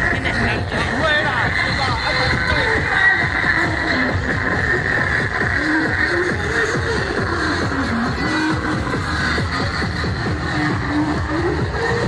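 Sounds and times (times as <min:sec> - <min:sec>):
loud music with busy beat: 0:00.0 - 0:12.0.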